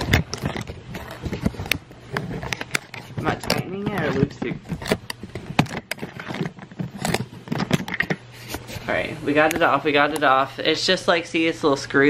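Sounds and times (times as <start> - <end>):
camera handling clicks and scrapes: 0.0 - 8.8.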